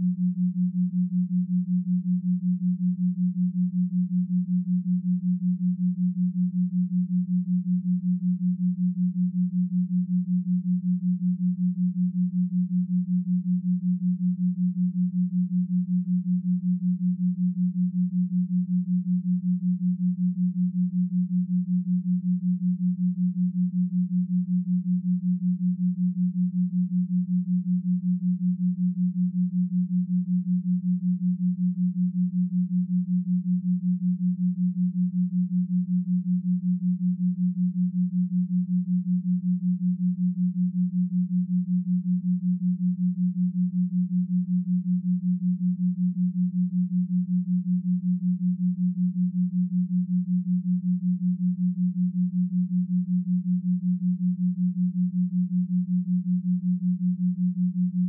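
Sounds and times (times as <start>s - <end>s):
pulsing low pure tone: 0.0s - 58.0s.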